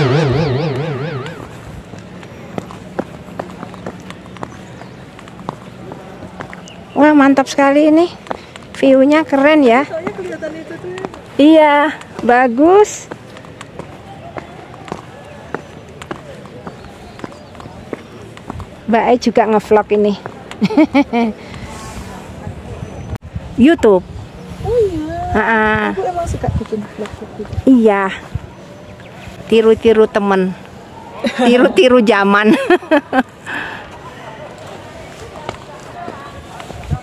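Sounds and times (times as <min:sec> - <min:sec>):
warbling tone: 0:00.0 - 0:01.9
faint distant voices: 0:00.0 - 0:37.0.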